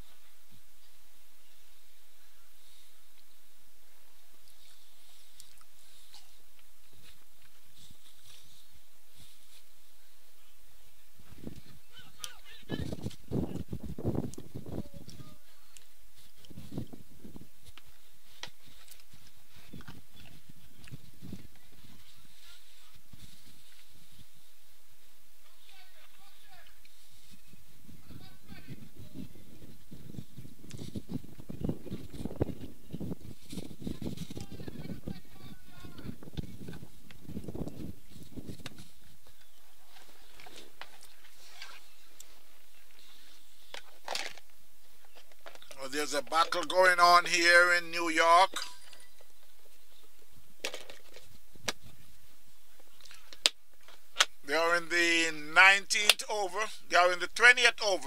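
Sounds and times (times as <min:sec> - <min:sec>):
outdoor background hiss: 0:00.0 - 0:58.0
distant players calling out: 0:11.7 - 0:13.1, 0:45.8 - 0:48.7, 0:54.4 - 0:58.0.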